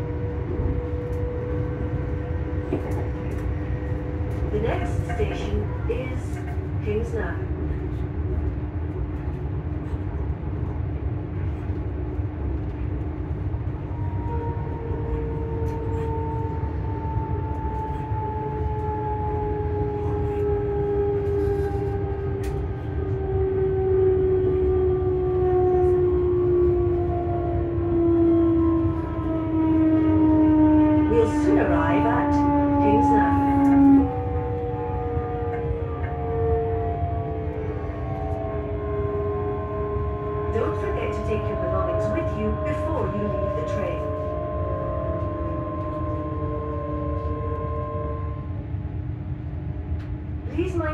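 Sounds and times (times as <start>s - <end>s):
train low rumble: 0.0s - 50.9s
traction motor whine: 13.8s - 48.8s.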